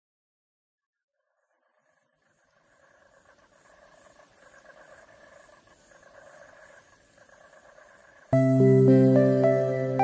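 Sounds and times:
fine chirring insects: 1.2 - 10.0.

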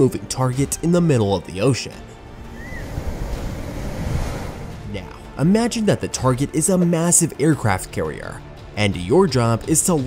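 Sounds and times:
wind: 2.0 - 5.4
ocean waves: 2.0 - 5.6.

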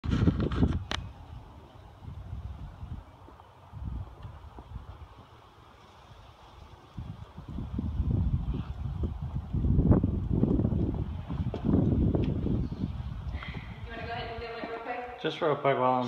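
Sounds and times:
wind rumbling on microphone: 0.0 - 15.2
footsteps thumping: 10.4 - 12.5, 13.4 - 15.0.

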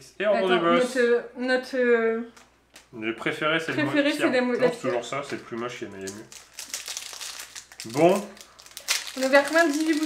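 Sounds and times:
foil wrapper crinkling: 5.2 - 10.0.

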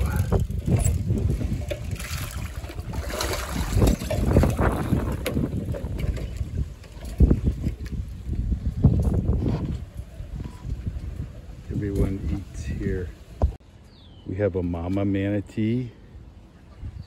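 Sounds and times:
fish splashing in water: 0.0 - 7.2
grain pattering on water: 0.0 - 8.3
wind buffeting microphone: 0.0 - 13.6, 16.6 - 17.0.

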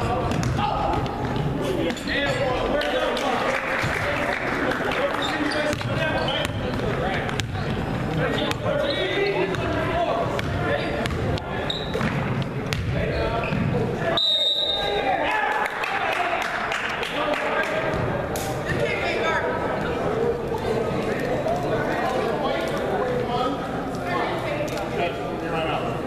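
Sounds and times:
echoing indistinct voices: 0.0 - 26.0
referee's whistle: 14.1 - 15.0.

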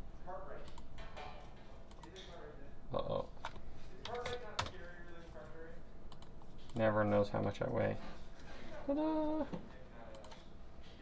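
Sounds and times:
computer keyboard keystrokes: 6.1 - 6.8.

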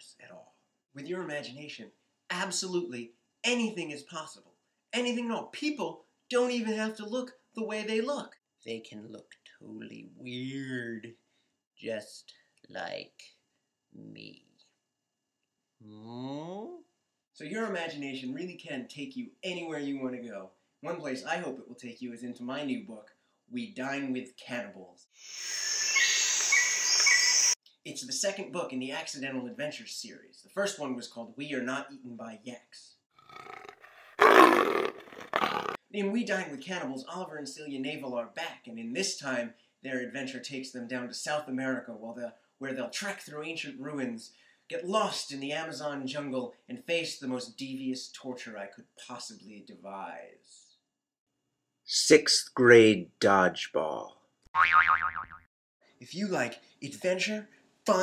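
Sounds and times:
bird chirps: 25.3 - 27.6
cartoon boing: 54.6 - 55.5.

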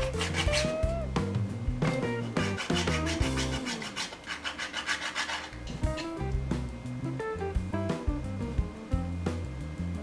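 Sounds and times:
hand file rasping plastic: 0.0 - 0.9, 2.0 - 6.1.

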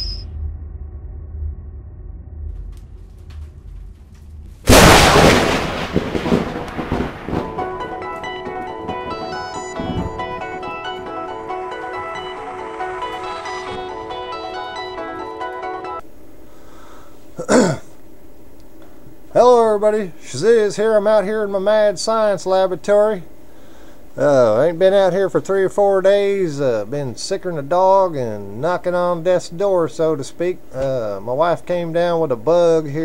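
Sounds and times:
cinematic boom: 0.0 - 11.1
low rumble: 0.0 - 11.1
man clearing throat: 17.4 - 18.0.

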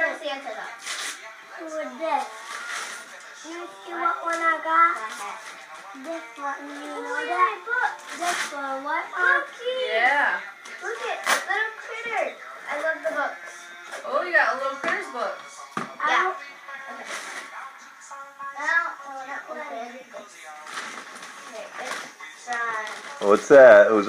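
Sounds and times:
music: 0.0 - 24.0.

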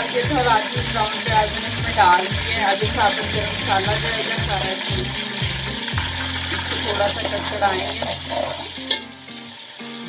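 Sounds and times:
spices and onions sizzling in oil: 0.0 - 10.0.

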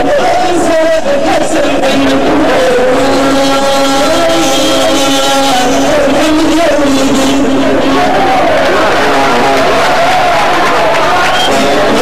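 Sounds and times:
band playing live: 0.0 - 12.0
long held notes: 2.0 - 10.0.

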